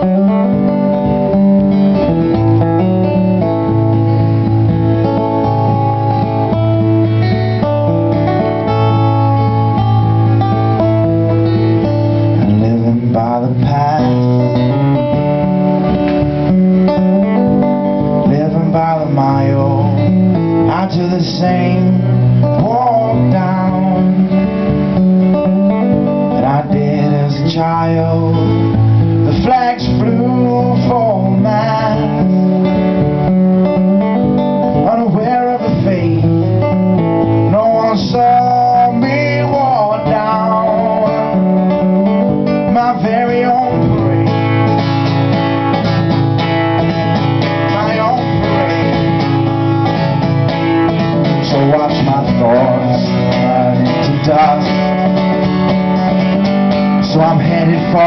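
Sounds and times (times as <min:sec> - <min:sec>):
man singing: 0:00.0 - 0:01.5, 0:11.2 - 0:15.7, 0:18.0 - 0:33.0, 0:34.7 - 0:44.7, 0:47.0 - 0:49.6, 0:51.0 - 0:58.0
acoustic guitar strumming: 0:00.0 - 0:58.0.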